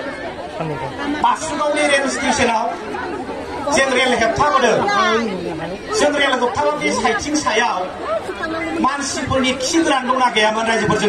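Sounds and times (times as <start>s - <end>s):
man speaking over public address: 0.6s - 2.8s, 3.7s - 8.0s, 8.8s - 11.0s.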